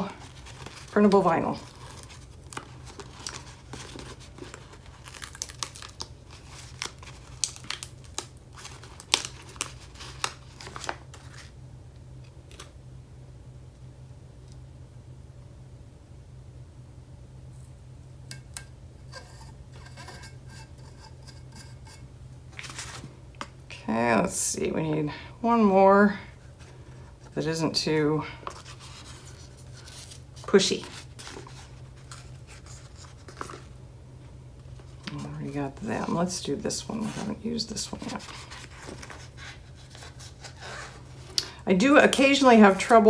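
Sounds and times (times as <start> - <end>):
paper sheet rustling: 0.0 - 11.5, 22.5 - 23.1, 28.4 - 33.7, 36.9 - 41.4
low steady hum: 0.0 - 43.0.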